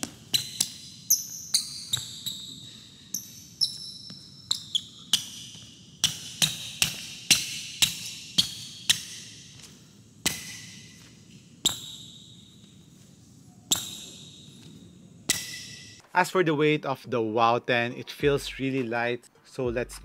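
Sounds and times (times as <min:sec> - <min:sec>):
shoes squeaking on hardwood floor: 0:00.0 - 0:16.0.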